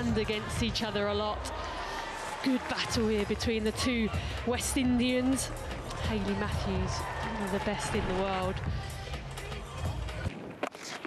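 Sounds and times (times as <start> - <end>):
music: 0.0 - 11.0
stadium background noise: 0.0 - 11.0.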